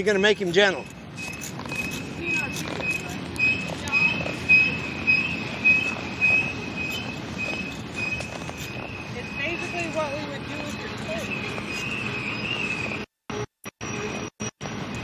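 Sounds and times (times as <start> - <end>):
pulsing high squeal: 0.2 - 15.0.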